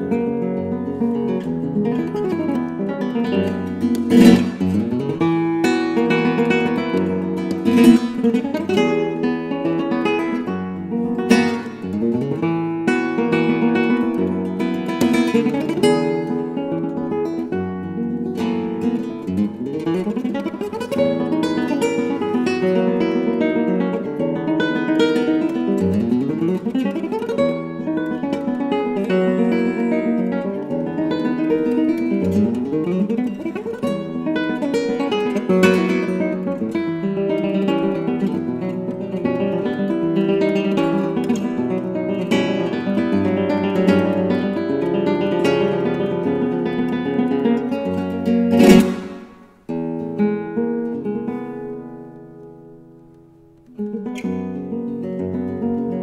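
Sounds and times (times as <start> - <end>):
flamenco guitar fingerstyle: 0.0 - 56.0.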